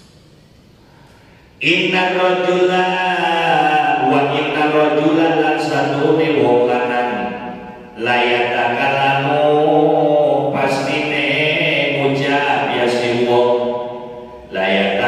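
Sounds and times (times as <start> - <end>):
man chanting: 1.6 - 15.0.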